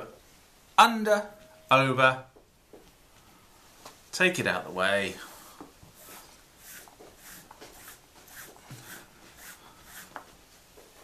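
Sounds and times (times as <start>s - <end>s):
cord rubbing with soft swishes: 5.2s - 11.0s.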